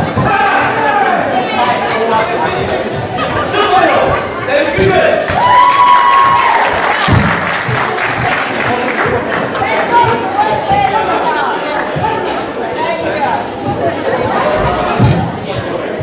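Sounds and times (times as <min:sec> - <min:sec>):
crowd chatter in hall: 0:00.0 - 0:16.0
scattered applause: 0:04.0 - 0:12.2.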